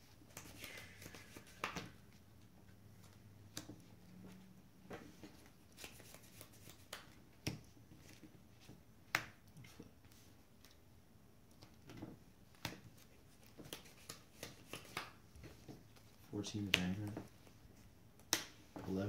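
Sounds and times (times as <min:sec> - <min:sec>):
cards clicking and slapping on a mat: 0:00.2 - 0:02.0, 0:03.0 - 0:03.9, 0:04.9 - 0:09.8, 0:11.6 - 0:17.3, 0:18.2 - 0:18.8.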